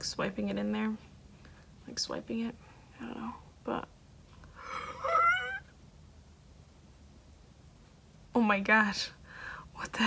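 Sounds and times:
woman exclaiming ooh: 0:04.8 - 0:05.7.

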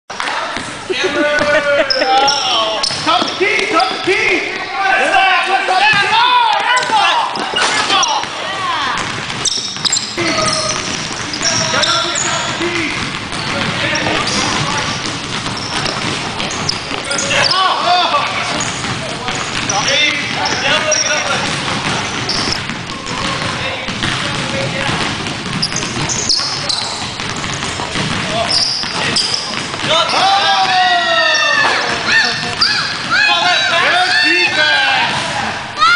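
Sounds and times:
sneakers squeaking on court: 0:00.1 - 0:04.7, 0:06.7 - 0:33.8
basketball bouncing: 0:00.5 - 0:04.7, 0:05.9 - 0:33.8
players calling out: 0:00.5 - 0:35.9.

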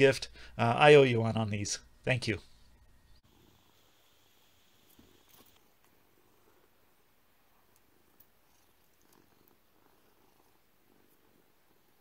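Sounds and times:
cat purring: 0:03.3 - 0:12.0.

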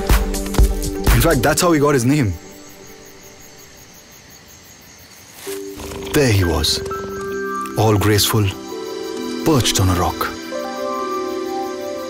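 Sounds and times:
crickets chirping: 0:00.0 - 0:12.0
held musical chord: 0:05.8 - 0:12.0.

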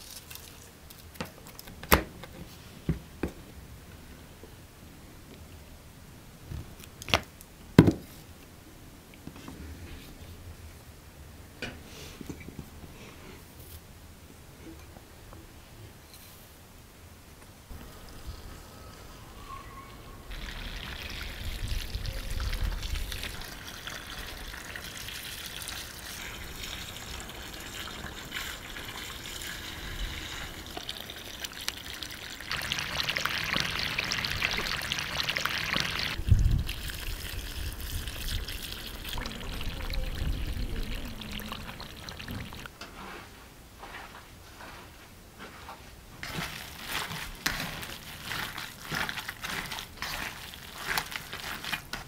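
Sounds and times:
water running from garden hose: 0:20.3 - 0:42.7, 0:46.2 - 0:51.9.

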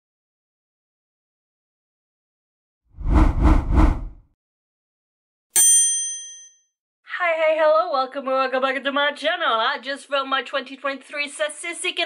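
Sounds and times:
bell-like ding: 0:05.6 - 0:06.7.

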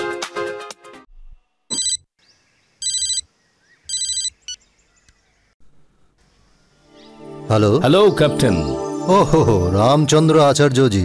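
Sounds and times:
phone ringtone: 0:01.7 - 0:02.0, 0:02.8 - 0:03.2, 0:03.9 - 0:04.4.

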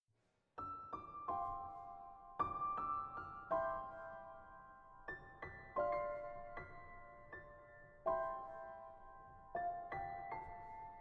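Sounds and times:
slow gentle piano melody: 0:00.6 - 0:11.0.

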